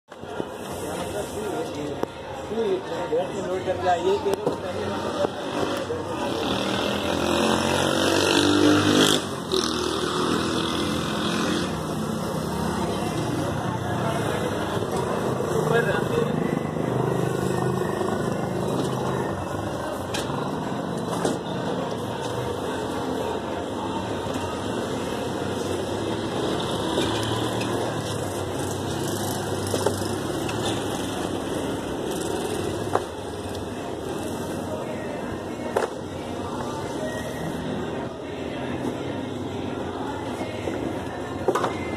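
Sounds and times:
street noise with vehicles: 0.0 - 41.9.

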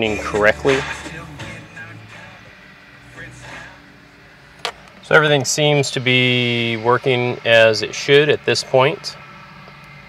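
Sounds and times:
radio music and speech from car speakers: 0.0 - 3.9, 5.0 - 9.2.

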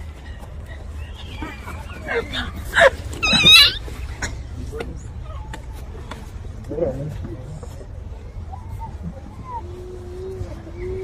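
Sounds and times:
crowd noise: 0.0 - 11.0
person's high wavering cry: 2.1 - 3.8.

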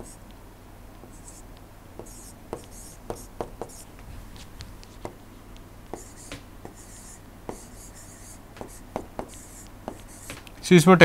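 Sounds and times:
stylus scratching on tablet: 0.0 - 0.2, 1.0 - 10.4
steady low hum: 0.0 - 11.0.

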